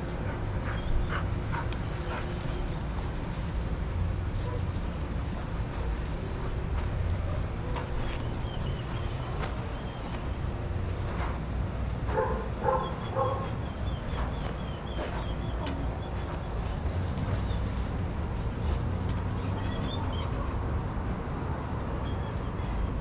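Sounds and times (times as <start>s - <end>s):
steady low rumble: 0.0s - 14.8s
dog barking: 4.4s - 4.8s, 12.1s - 13.5s.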